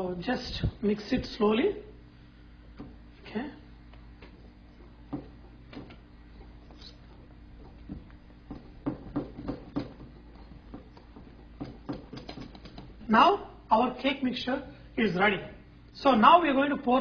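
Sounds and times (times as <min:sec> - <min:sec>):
utensil scraping mixing bowl: 0:04.1 - 0:13.1.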